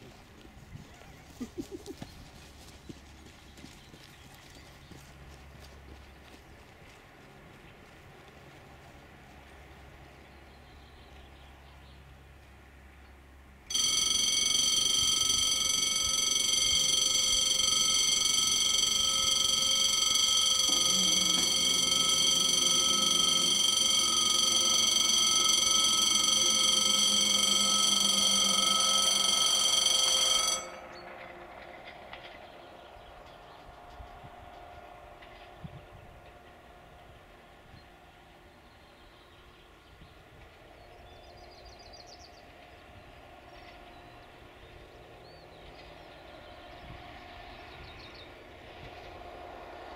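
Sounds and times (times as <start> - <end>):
level crossing warning ringer: 13.7 - 31.3.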